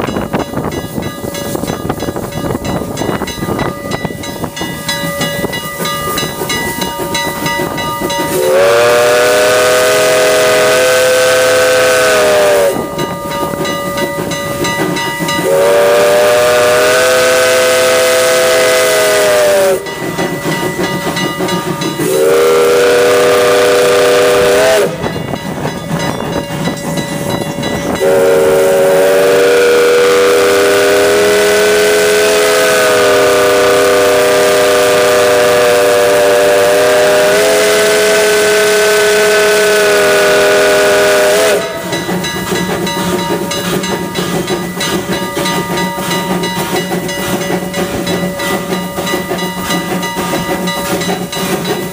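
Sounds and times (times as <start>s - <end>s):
running train noise: 0.0s - 51.9s
steam hissing: 0.0s - 51.9s
steam locomotive chime whistle: 0.0s - 51.9s.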